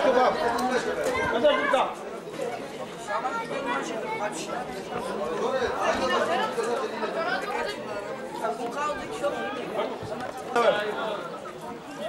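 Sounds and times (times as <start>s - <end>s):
overlapping chatter of voices: 0.0s - 12.0s.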